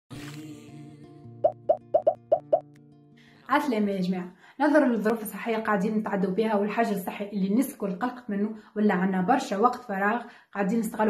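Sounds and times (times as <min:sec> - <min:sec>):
cartoon plop sound effects: 0:01.4 - 0:02.6.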